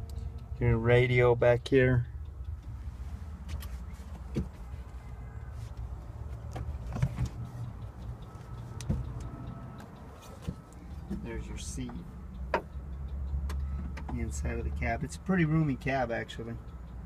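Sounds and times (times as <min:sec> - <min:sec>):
steady low rumble: 0:00.0 - 0:13.4
sharp knocks and handling bumps: 0:03.4 - 0:04.7, 0:05.7 - 0:07.5.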